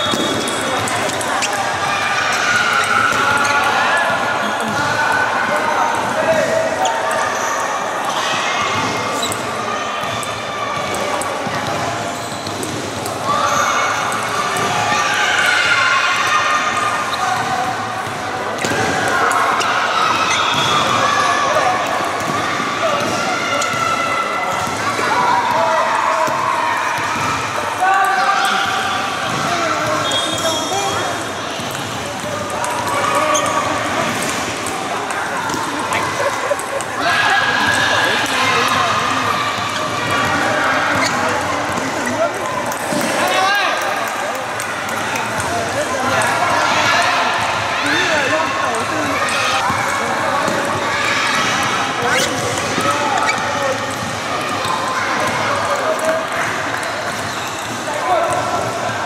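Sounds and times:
babble of many voices: 0.0s - 59.0s.

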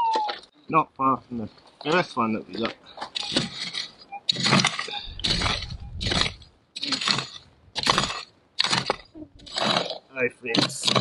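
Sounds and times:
stones clinking: 1.9s - 11.0s
pick striking stony ground: 2.6s - 11.0s.

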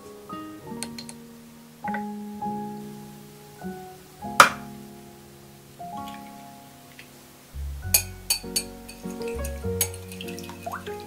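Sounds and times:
background music with bass line: 7.6s - 10.3s
whisk clinking against glass bowl: 7.9s - 10.8s.

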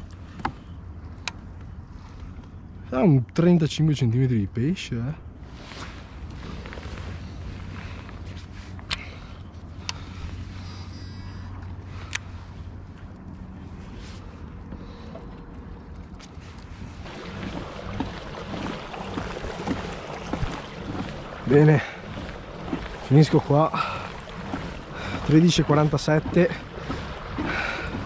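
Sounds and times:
low steady hum: 0.0s - 28.0s
kayak hull moving through water: 5.3s - 28.0s
water rushing and splashing: 16.9s - 28.0s.

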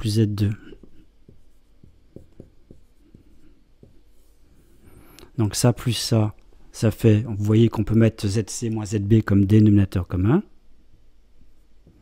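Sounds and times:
marker pen writing on whiteboard: 0.0s - 4.8s.

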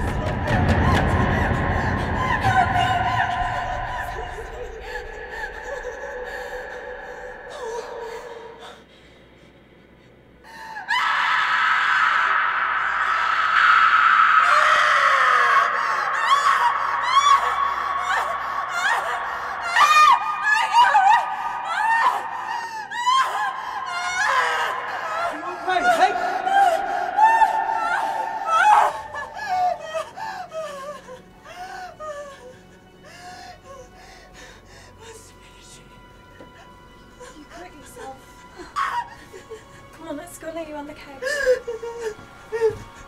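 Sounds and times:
woman crying and gasping: 0.0s - 9.6s, 14.4s - 35.8s, 36.4s - 40.2s, 41.0s - 43.0s
woman screaming and sobbing: 10.8s - 32.5s.

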